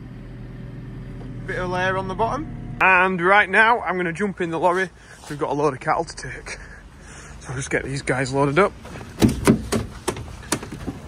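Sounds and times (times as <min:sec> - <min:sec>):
sharp knocks: 0:09.2 - 0:11.0.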